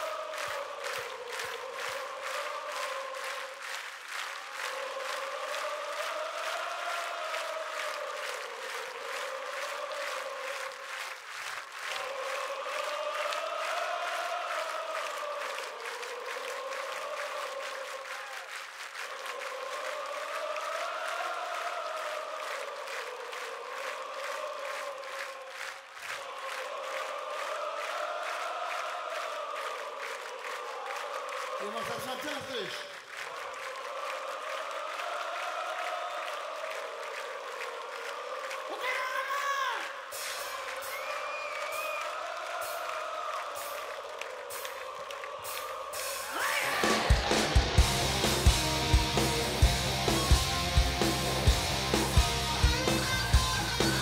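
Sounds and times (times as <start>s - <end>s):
crowd singing in unison: 0.0s - 38.9s, 39.7s - 54.0s
rhythmic clapping: 0.0s - 54.0s.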